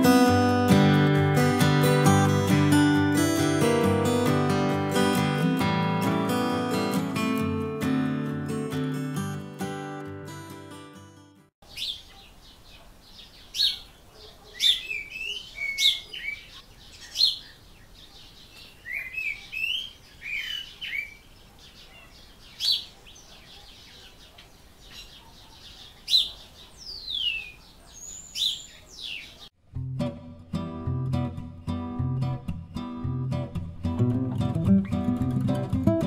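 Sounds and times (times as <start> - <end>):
guitar music: 0.0 - 11.5, 29.6 - 36.0
small birds chirping and singing: 11.6 - 29.6.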